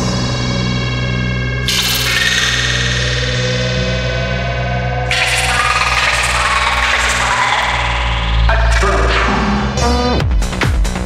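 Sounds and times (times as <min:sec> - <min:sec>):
electronic bass drone: 0:00.0 - 0:11.0
sustained synthesizer tones: 0:01.5 - 0:10.2
rising synth line: 0:01.7 - 0:09.8.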